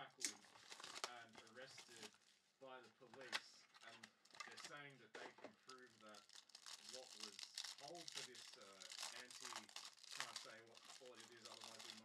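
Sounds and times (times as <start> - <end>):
plastic wrapper crinkling and tearing: 0.4 - 2.4, 3.8 - 4.7, 5.6 - 12.0.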